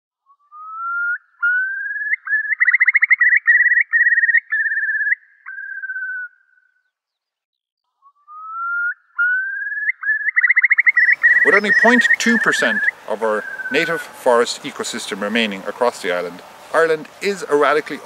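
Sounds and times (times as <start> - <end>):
bird whistling song with trill: 0.2 - 7.3, 7.9 - 14.2.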